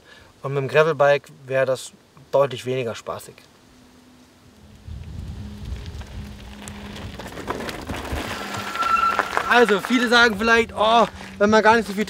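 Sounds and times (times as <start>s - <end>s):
low rumble: 4.4s - 9.5s
bike tyres rolling over gravel: 4.4s - 12.0s
small stone ticks: 4.5s - 12.0s.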